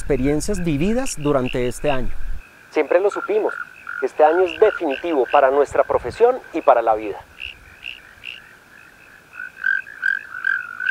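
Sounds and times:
frogs chirping: 0:00.0 - 0:10.9.

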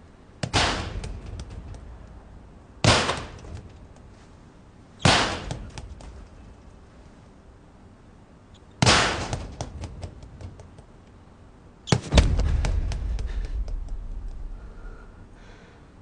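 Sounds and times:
loud ringing bangs: 0:12.0 - 0:15.1
low rumble: 0:12.1 - 0:15.6.

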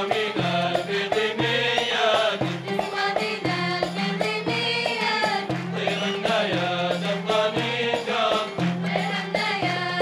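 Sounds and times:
chorus singing folk song: 0:00.0 - 0:10.0
instrumental accompaniment with steady beat: 0:00.0 - 0:10.0.

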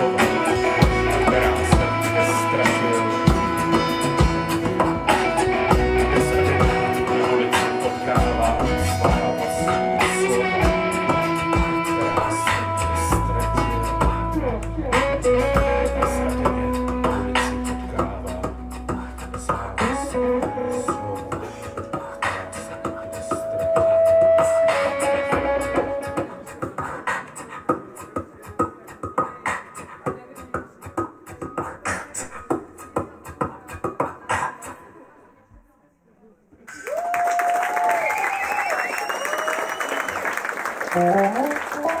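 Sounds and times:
beatboxing into microphone: 0:00.0 - 0:35.3, 0:40.9 - 0:42.0
audience cheering and applause: 0:36.7 - 0:42.0.

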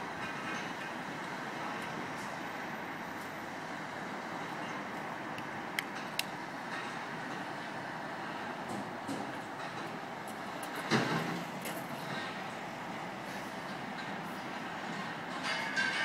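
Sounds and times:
engines and machinery: 0:00.0 - 0:16.0.

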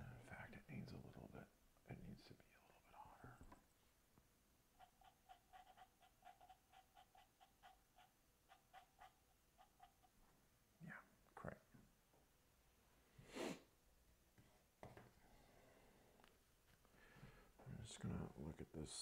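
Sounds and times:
person whispering: 0:00.0 - 0:03.6, 0:10.8 - 0:11.7, 0:17.6 - 0:19.0.

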